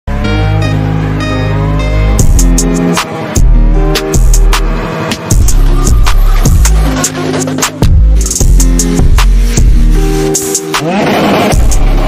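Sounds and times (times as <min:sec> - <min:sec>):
music with low bass: 0:00.1 - 0:12.0
car engine at high revs: 0:02.2 - 0:12.0.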